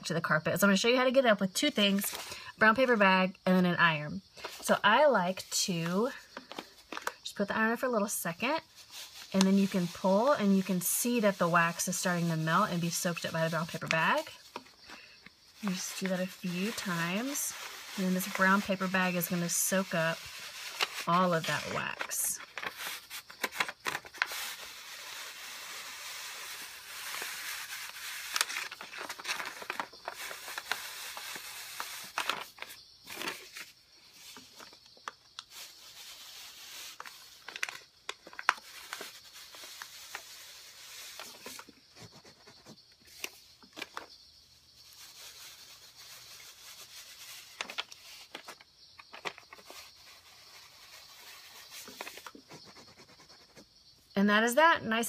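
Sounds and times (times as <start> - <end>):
paper bag rustling and scraping: 4.4 - 44.1, 44.8 - 53.0
paper crinkles: 6.0 - 7.2, 8.6 - 44.1, 44.8 - 53.1.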